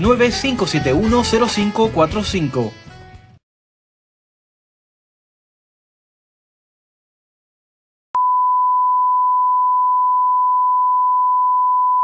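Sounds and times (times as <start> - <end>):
sine test tone: 8.2 - 12.0.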